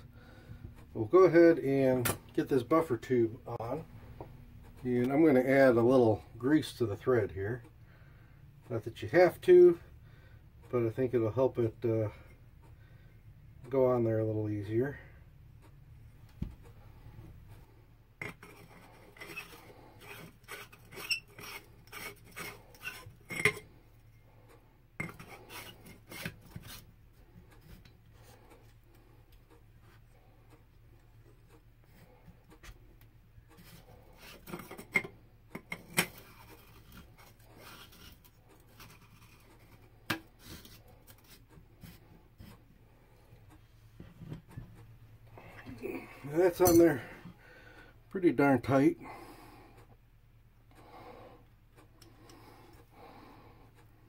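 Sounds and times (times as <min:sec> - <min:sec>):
metal scraping and clicking: 0:18.2 - 0:29.6, 0:33.4 - 0:42.6.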